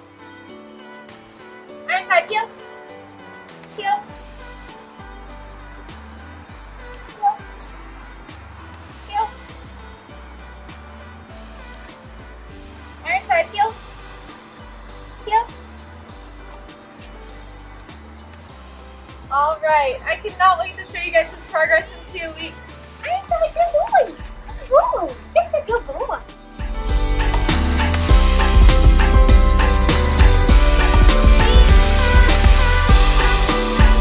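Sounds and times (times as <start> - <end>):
background music with bass line: 2.6 - 34.0
voice calling: 19.3 - 26.3.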